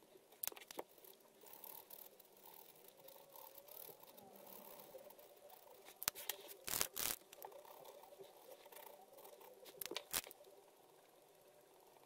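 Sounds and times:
markers clicking: 0.4s - 8.0s, 8.7s - 10.4s.

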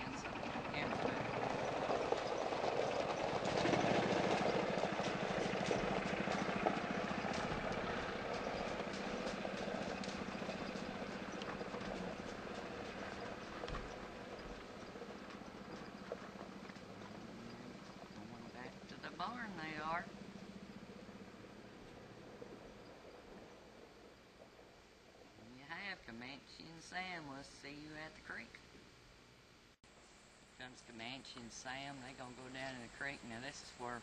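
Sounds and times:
horse hooves clopping on gravel: 0.0s - 25.3s
small cart motor running: 0.0s - 25.4s
wheels on gravel: 0.0s - 26.0s.

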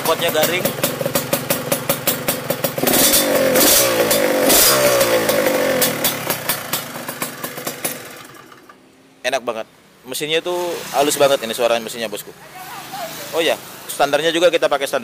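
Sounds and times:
two-stroke motorcycle engine revving: 0.0s - 8.8s, 10.6s - 12.2s.

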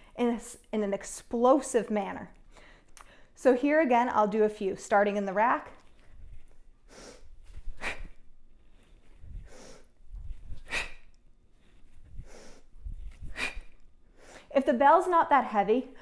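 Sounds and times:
forceful breathing: 6.8s - 14.5s.

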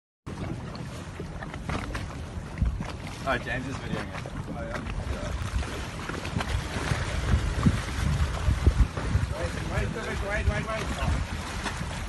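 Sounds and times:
water around boat hull: 0.3s - 12.0s
wind buffeting microphone: 0.3s - 12.0s.

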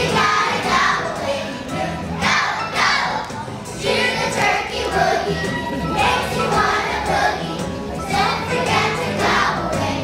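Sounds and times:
children singing together: 0.0s - 10.0s.

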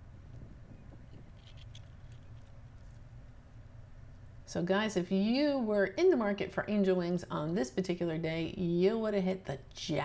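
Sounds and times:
steady low rumble: 0.0s - 5.3s.

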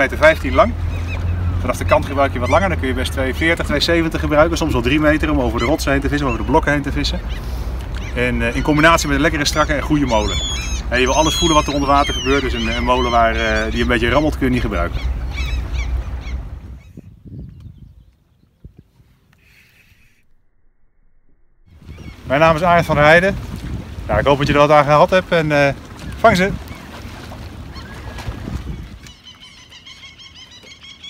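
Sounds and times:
boat noise: 0.0s - 17.0s, 18.0s - 31.0s
short high bird calls: 9.6s - 17.8s, 19.3s - 20.4s
wind on microphone rumble: 13.9s - 20.5s, 21.5s - 29.2s.

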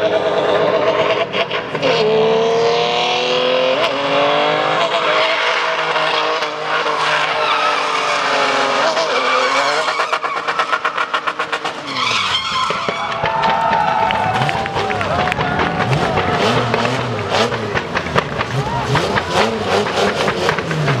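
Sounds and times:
engine revving high: 0.0s - 12.2s, 14.2s - 21.0s
tyres squealing on asphalt: 4.9s - 21.0s.

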